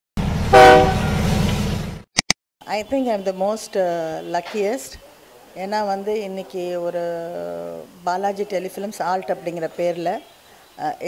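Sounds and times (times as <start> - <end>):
short horn-like chord: 0.5 - 1.4.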